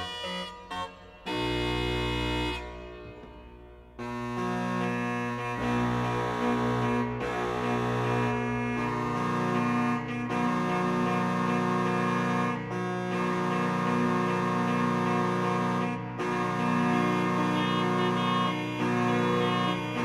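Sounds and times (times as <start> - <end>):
organ playing sustained chords: 0.0 - 20.0.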